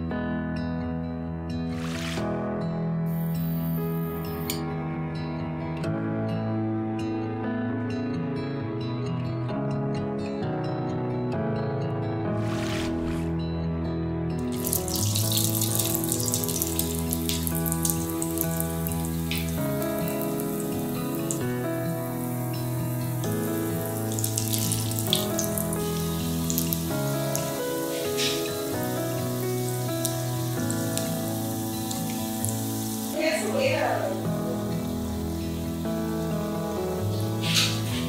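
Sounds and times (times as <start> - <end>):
background music with held chords: 0.0 - 38.0
patties sizzling in hot oil: 14.5 - 38.0.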